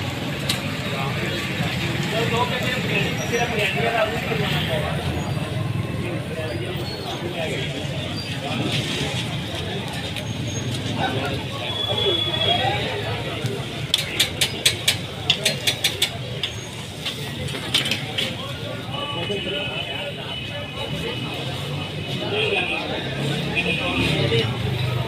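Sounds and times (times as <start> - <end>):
background chatter: 0.0 - 25.0.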